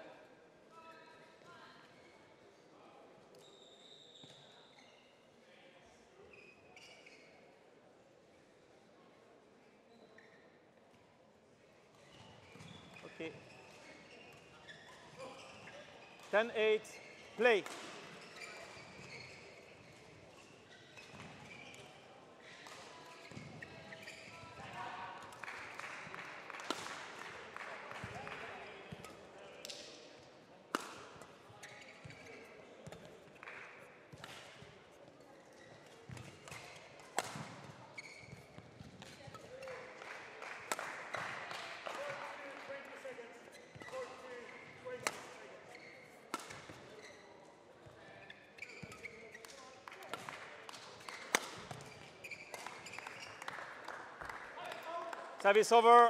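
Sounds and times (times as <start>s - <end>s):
rackets hitting shuttlecock: 36.1s - 37.7s, 46.3s - 46.8s, 48.8s - 52.9s.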